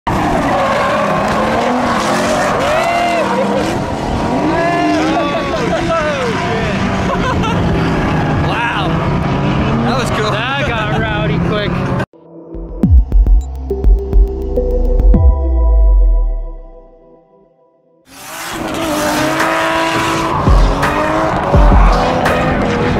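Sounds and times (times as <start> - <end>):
tires squealing: 0.1 - 12.0, 18.1 - 22.9
car engines revving: 0.1 - 12.1, 18.1 - 22.9
people talking: 4.6 - 7.4, 8.4 - 9.0, 9.7 - 11.8.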